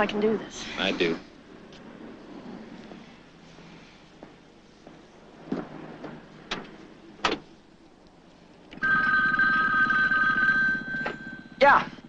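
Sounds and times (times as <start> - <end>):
telephone ringing: 8.8 - 11.8.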